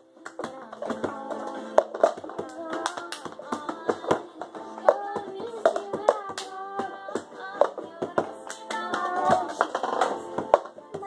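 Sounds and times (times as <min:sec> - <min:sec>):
person singing melody: 0:00.0 - 0:11.0
hand claps and cup taps: 0:00.2 - 0:11.0.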